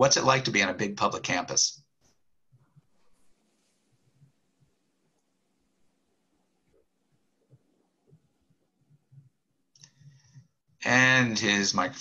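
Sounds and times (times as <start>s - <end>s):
man speaking: 0.0s - 1.8s, 10.8s - 12.0s
faint soft clicks: 6.6s - 10.5s.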